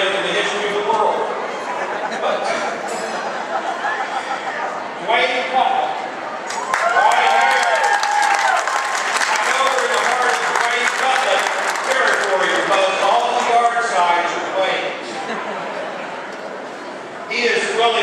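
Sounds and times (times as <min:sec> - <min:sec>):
people cheering: 0:06.4 - 0:13.8
audience applause: 0:06.5 - 0:13.8.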